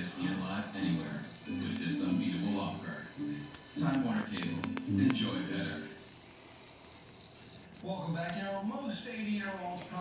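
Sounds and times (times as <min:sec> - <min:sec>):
person speaking: 0:00.0 - 0:06.0.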